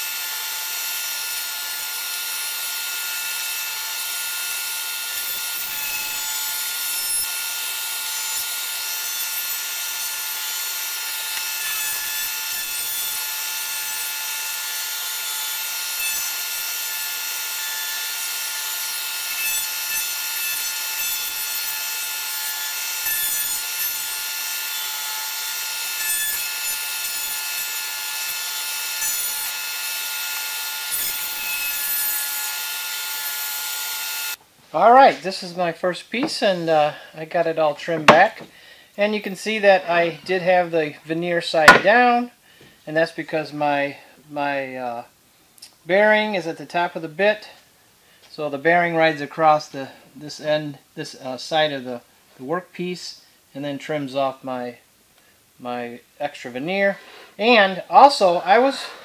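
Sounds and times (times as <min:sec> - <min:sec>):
router bit cutting wood: 0:00.0 - 0:34.4, 0:41.6 - 0:42.1.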